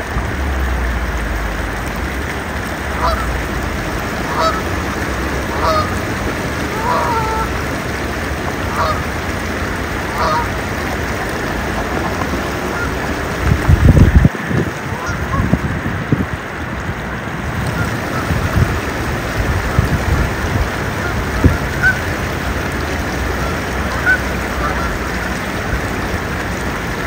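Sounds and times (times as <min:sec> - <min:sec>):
wind rumble on microphone: 0:00.0 - 0:27.0
faint waterfowl calls: 0:05.5 - 0:06.0, 0:06.7 - 0:07.5, 0:08.7 - 0:09.1, 0:10.1 - 0:10.5.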